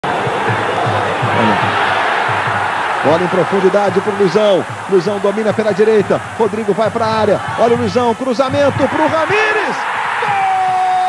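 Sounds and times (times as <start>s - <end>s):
stadium crowd noise: 0.0s - 11.0s
low voices: 1.3s - 1.8s.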